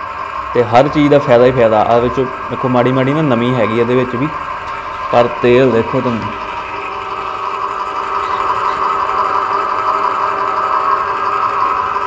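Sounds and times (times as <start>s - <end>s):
oil press motor hum: 0.0s - 12.0s.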